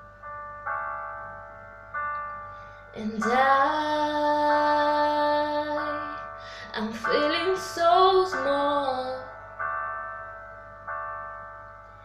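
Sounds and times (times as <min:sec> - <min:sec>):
piano chords ringing: 0:00.0 - 0:12.0.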